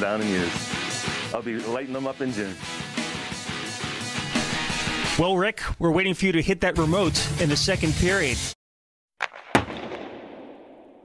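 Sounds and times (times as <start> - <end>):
sharp bangs: 9.2 - 11.0.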